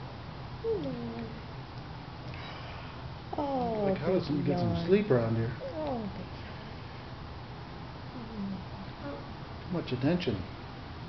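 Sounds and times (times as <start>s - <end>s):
newborn baby whimper: 0.6s - 1.4s, 5.6s - 6.3s.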